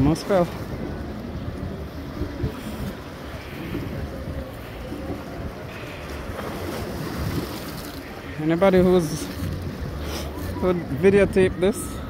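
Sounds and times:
small waves washing on rocks: 0.0 - 10.4
wind buffeting microphone: 0.0 - 12.0.

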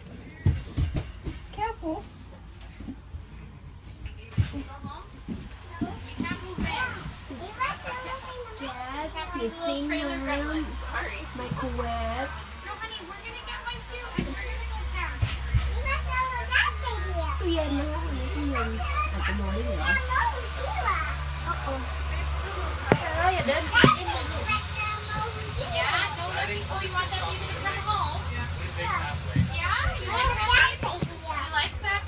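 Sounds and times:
people talking: 1.5 - 2.1, 4.1 - 32.0
young children's voices: 5.6 - 10.0, 14.1 - 21.3, 23.7 - 25.9, 29.8 - 31.6
child's high-pitched voice: 14.9 - 17.4, 29.8 - 31.6.

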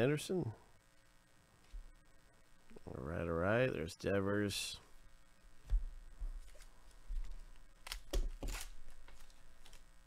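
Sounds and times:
cards rustling: 6.4 - 9.9.

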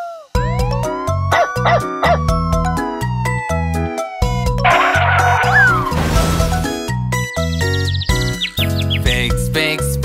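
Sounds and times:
cartoon police siren effect: 0.0 - 6.0
upbeat children's song music: 0.0 - 10.0.

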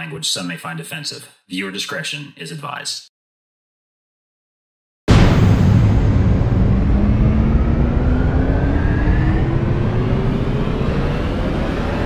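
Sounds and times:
rumbling rising riser effect: 5.1 - 12.0.

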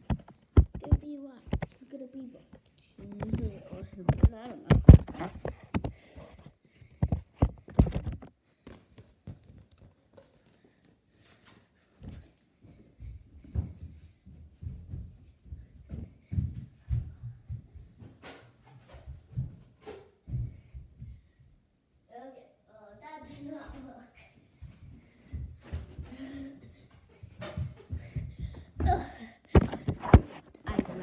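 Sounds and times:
sharp knocks and thumps: 0.0 - 1.8, 2.5 - 8.4, 27.2 - 31.0.

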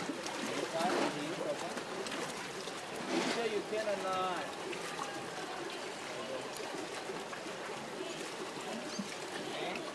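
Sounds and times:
pool water splashing: 0.0 - 9.9
faint children's voices: 7.7 - 9.9.

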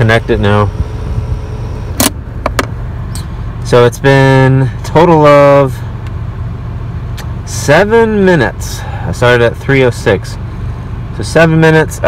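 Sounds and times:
tire inflator compressor humming: 0.0 - 11.2.

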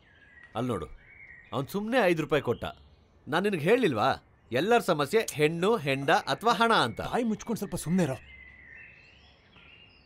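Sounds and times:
faint outdoor ambience: 0.0 - 10.0
man speaking: 1.6 - 8.2.

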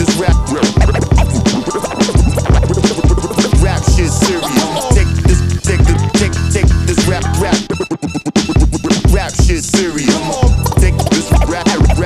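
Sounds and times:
heavy kick drum: 0.0 - 1.5, 2.2 - 6.9, 8.6 - 9.6, 10.4 - 12.0
hip hop beat: 0.0 - 12.0
turntable scratching: 0.0 - 12.0.

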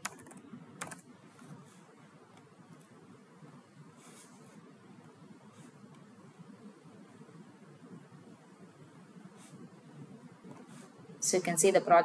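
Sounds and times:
keyboard keystrokes clicking: 0.0 - 1.0.

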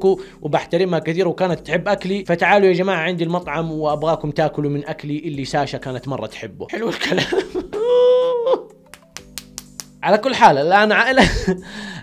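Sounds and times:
sharp hand claps: 8.8 - 10.0.

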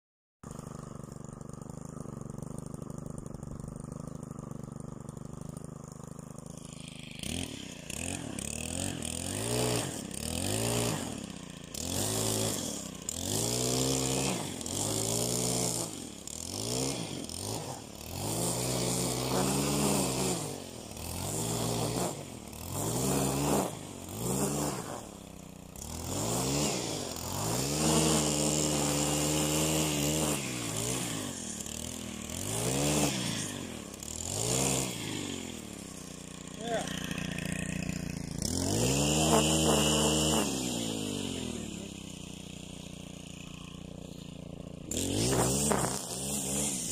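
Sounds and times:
string trimmer engine revving: 0.4 - 46.9.

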